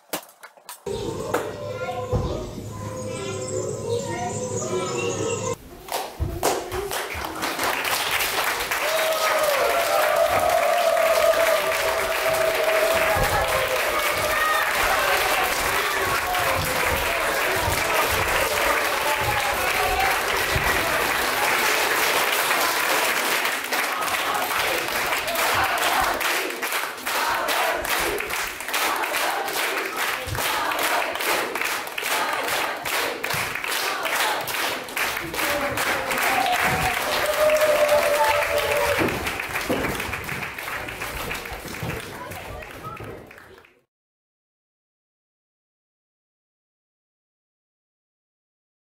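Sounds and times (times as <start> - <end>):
audience applauding: 6.4 - 43.8.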